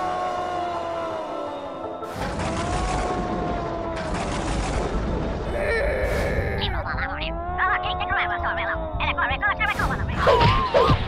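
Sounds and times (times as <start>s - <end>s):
dense rattling crackle: 2.1s - 5.5s.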